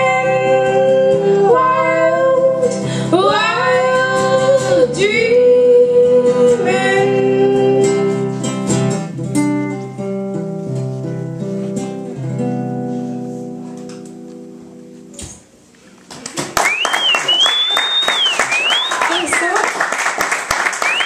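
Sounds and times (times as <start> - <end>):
woman singing: 0.0 - 8.4
acoustic guitar strumming: 0.0 - 15.2.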